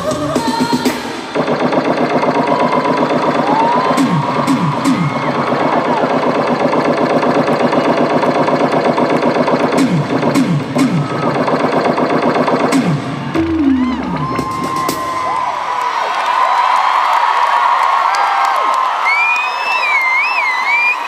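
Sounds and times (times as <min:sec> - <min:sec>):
live instrumental concert music: 0:00.0 - 0:15.5
buzzing with falling pitch swoops: 0:01.2 - 0:14.8.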